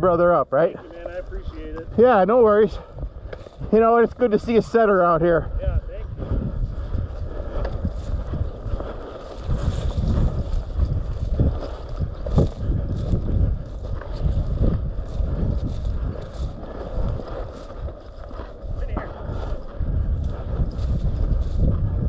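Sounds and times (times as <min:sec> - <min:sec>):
wind buffeting microphone: 0:00.0 - 0:22.0
footsteps swishing through dry grass: 0:06.4 - 0:22.0.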